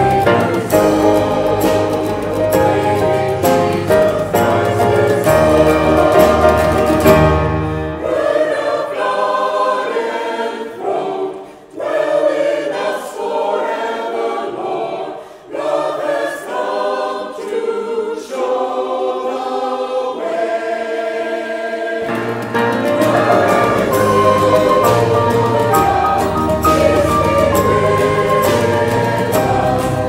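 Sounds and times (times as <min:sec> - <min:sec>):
mixed choir singing unaccompanied: 0:00.0 - 0:30.0.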